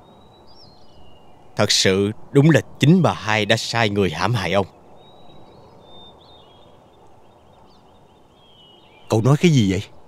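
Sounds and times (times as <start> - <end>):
outdoor background hiss: 0.0 - 10.0
small birds chirping: 0.0 - 10.0.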